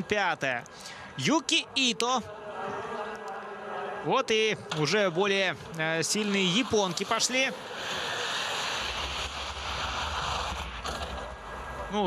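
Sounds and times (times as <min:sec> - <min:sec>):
skis rushing on snow track: 0:06.1 - 0:12.0.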